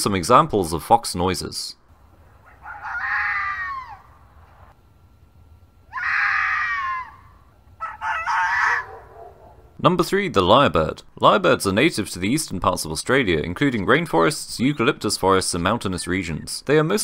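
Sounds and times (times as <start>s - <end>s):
red fox screaming: 2.4s - 4.1s, 5.9s - 9.2s.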